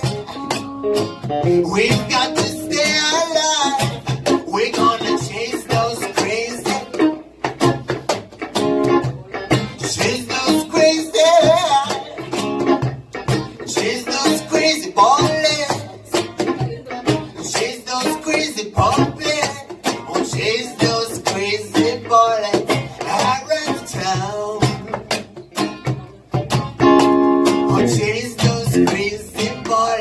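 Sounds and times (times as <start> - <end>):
acoustic guitar strumming: 0.0 - 30.0
man singing reggae: 1.3 - 7.4, 8.9 - 12.8, 13.4 - 25.8, 26.9 - 30.0.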